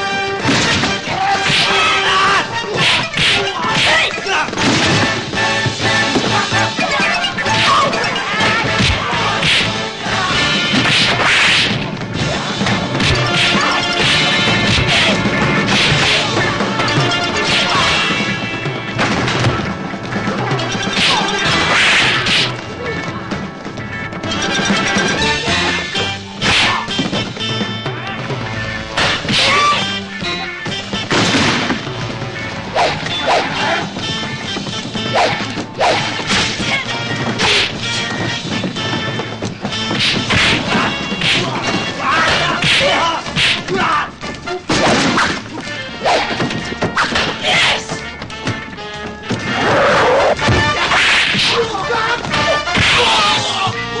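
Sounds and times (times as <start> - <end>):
film music score: 0.0 - 54.0
fight hits and crashes: 0.3 - 22.7, 30.7 - 44.0, 44.7 - 47.6
punch impacts: 12.9 - 16.4.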